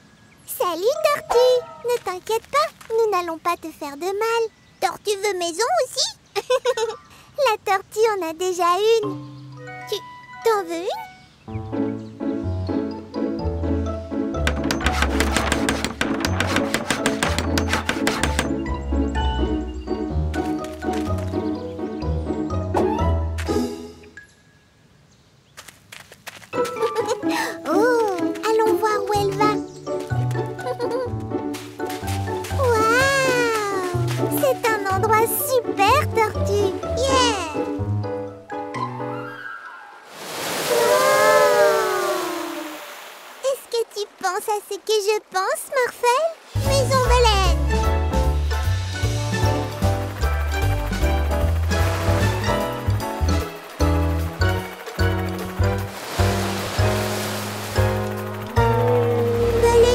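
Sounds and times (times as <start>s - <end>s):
cartoon background music: 0.5s - 2.4s, 8.0s - 24.2s, 26.6s - 40.0s, 46.6s - 59.9s
cartoon hammering knocks: 14.4s - 18.8s
rush of water: 40.0s - 47.1s, 55.6s - 58.4s
low whale call gliding down: 40.6s - 42.9s, 58.5s - 59.6s.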